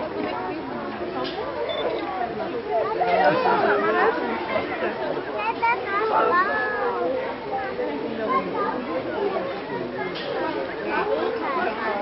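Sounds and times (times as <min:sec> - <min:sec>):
babble of many voices: 0:00.0 - 0:12.0.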